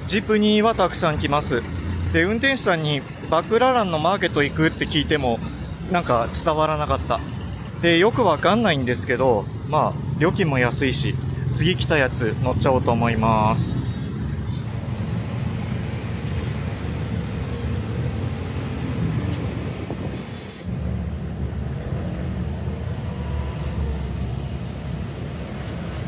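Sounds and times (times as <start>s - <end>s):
road noise: 0.0s - 26.0s.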